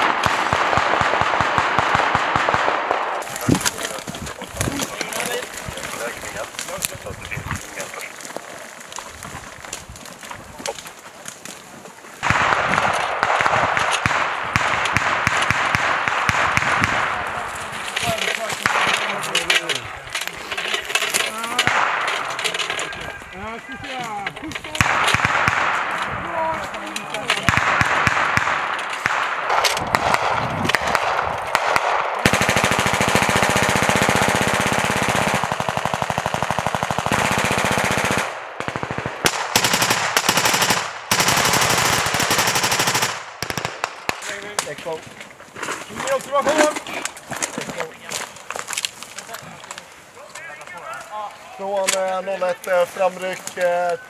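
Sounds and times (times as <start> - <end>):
machine-gun fire: 0.0 - 4.0, 12.2 - 17.4, 18.1 - 19.7, 20.6 - 23.0, 24.6 - 44.3.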